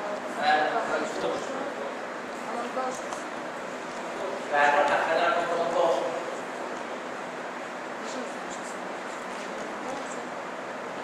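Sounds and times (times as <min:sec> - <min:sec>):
room noise hiss: 0:00.0 - 0:11.0.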